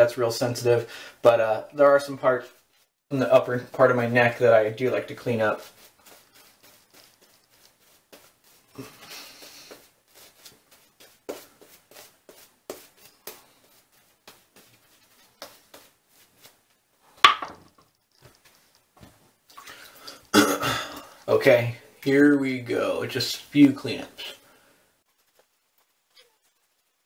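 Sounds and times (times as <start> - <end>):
shaving brush swishes: 3.4 - 16.8.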